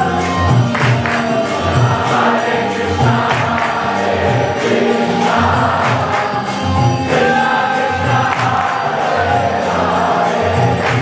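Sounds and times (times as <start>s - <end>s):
crowd singing a devotional chant: 0.0s - 11.0s
steady drum beat: 0.0s - 11.0s.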